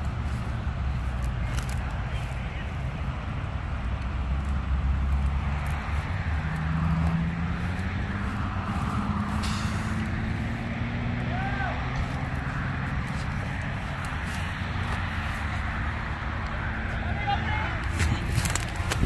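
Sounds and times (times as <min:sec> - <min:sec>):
vehicle engines idling: 0:00.0 - 0:19.0
short hiss: 0:09.4 - 0:10.0.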